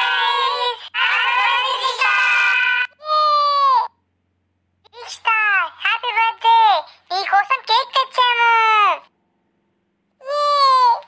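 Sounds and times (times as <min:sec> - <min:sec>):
high-pitched cartoon voice singing: 0:00.0 - 0:03.5.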